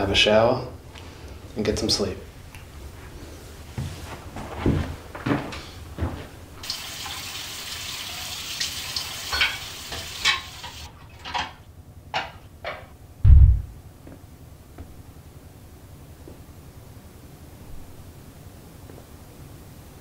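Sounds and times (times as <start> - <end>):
dishes clinking: 9.2 - 11.6
loud low thud: 13.2 - 13.8.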